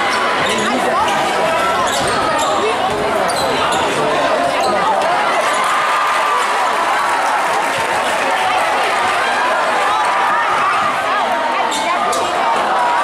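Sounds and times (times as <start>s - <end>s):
crowd voices echoing: 0.0s - 13.0s.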